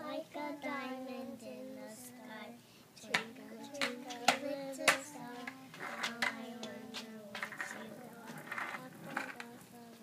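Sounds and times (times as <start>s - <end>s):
child singing softly: 0.0s - 10.0s.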